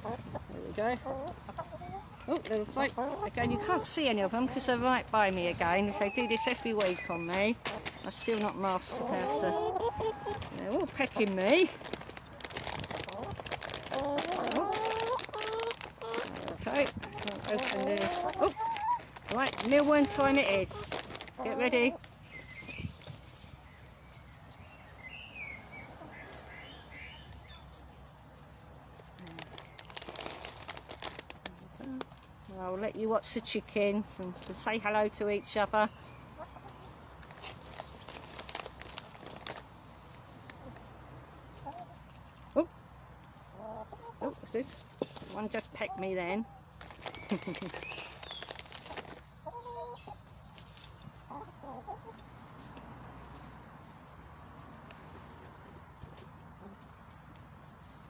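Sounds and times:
hen clucking: 0:00.0 - 0:11.7, 0:13.0 - 0:22.1, 0:43.4 - 0:46.7, 0:48.8 - 0:53.4
chickens calling: 0:00.0 - 0:58.0
hens pecking and scratching: 0:00.0 - 0:58.0.

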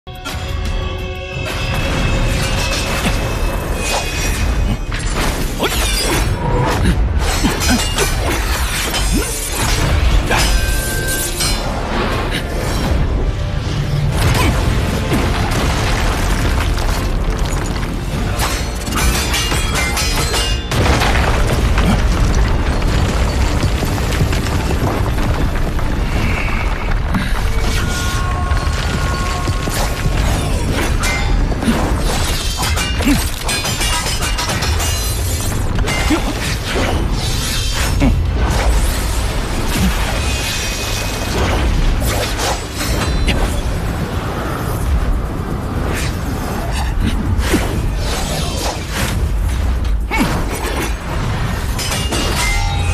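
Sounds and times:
music: 0:00.0 - 0:52.9.

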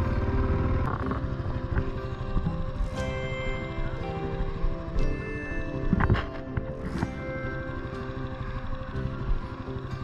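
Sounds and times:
motorcycle engine running: 0:00.0 - 0:10.0
music: 0:00.0 - 0:10.0.

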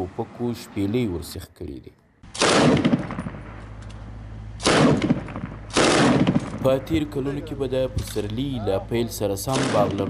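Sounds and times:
automatic gunfire bursts: 0:02.3 - 0:03.4, 0:04.6 - 0:06.6, 0:09.5 - 0:10.0.

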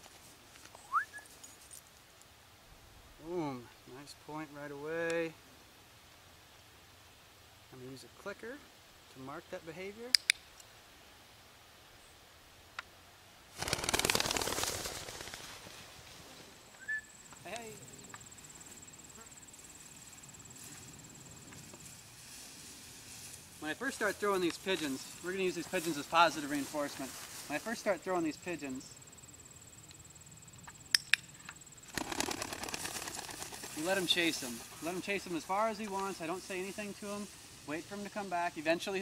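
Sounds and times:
clicker snapping: 0:10.2 - 0:10.4, 0:30.9 - 0:31.2
pigeon wings flapping: 0:13.5 - 0:15.9, 0:31.9 - 0:35.0.

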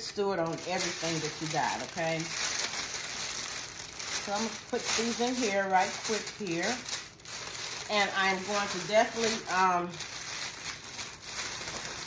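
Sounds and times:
plastic bag rustling: 0:00.0 - 0:12.0.

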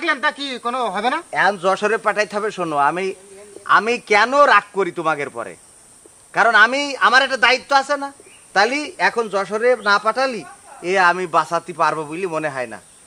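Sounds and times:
men talking: 0:00.0 - 0:05.6, 0:06.3 - 0:12.8
faint steady hiss: 0:00.0 - 0:13.0.

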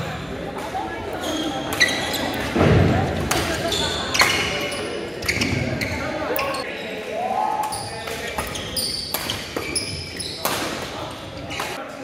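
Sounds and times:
voices of players: 0:00.0 - 0:12.0
sneaker squeaks: 0:01.1 - 0:02.7, 0:03.3 - 0:07.0, 0:07.6 - 0:11.8
racket hitting shuttlecock: 0:08.1 - 0:09.8, 0:10.4 - 0:11.0.

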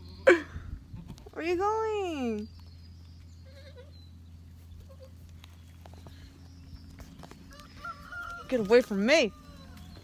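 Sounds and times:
low steady hum: 0:00.0 - 0:10.0
goats bleating: 0:03.4 - 0:03.9.

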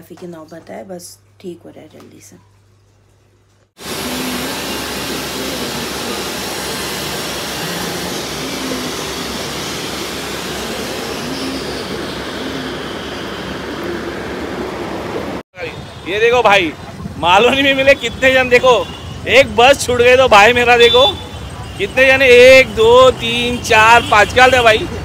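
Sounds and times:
aquarium air pump hiss: 0:03.8 - 0:13.7.

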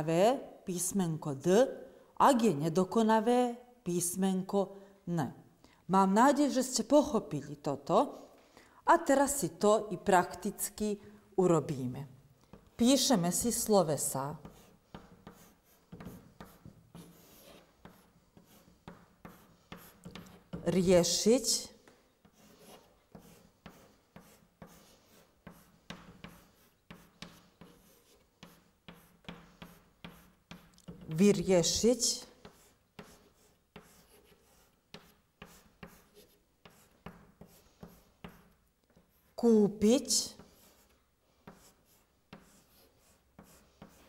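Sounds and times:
chalk scratching on blackboard: 0:14.4 - 0:21.2, 0:22.2 - 0:31.2, 0:32.2 - 0:39.4, 0:40.1 - 0:44.0.

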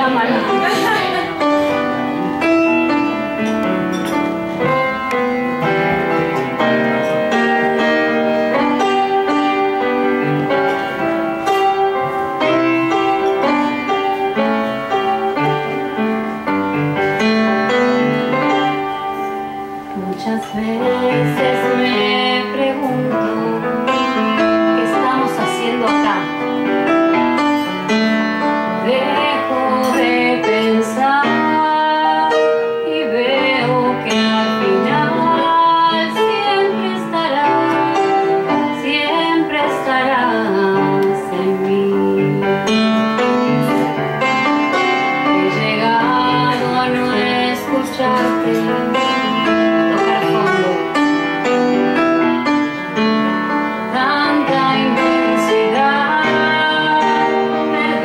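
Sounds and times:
woman singing: 0:00.0 - 0:03.0, 0:20.0 - 0:26.4, 0:28.7 - 0:44.0, 0:45.2 - 0:51.1, 0:53.8 - 0:58.0
grand piano ballad: 0:00.0 - 0:58.0.

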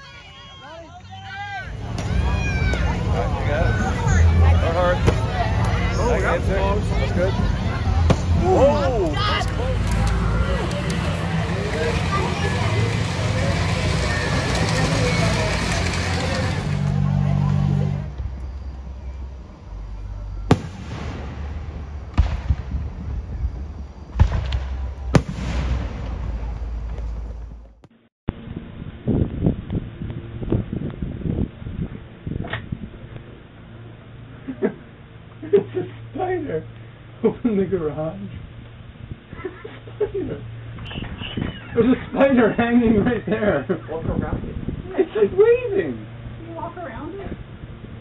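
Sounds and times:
steady low hum: 0:01.5 - 0:48.0
toy train running on track: 0:11.7 - 0:16.8
fireworks bangs: 0:20.5 - 0:27.8.

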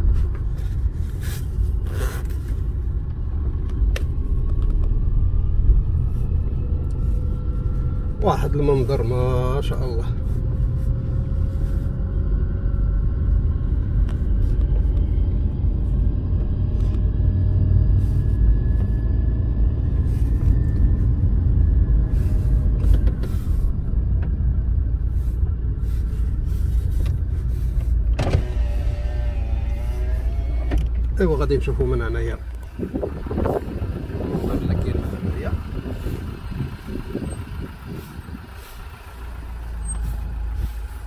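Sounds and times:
engine and tyre rumble inside car: 0:00.0 - 0:41.0
faint whine rising in pitch: 0:03.1 - 0:41.0.

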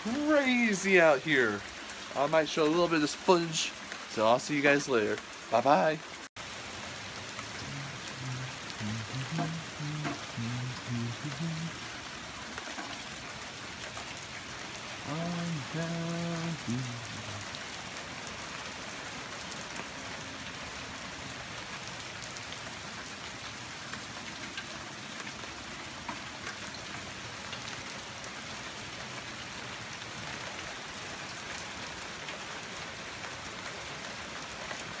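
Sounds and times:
heavy rain pouring: 0:00.0 - 0:35.0.

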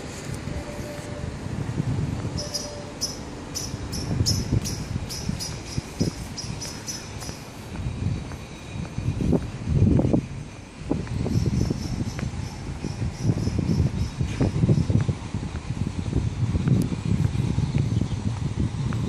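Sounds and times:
insect chirring: 0:02.4 - 0:07.4.

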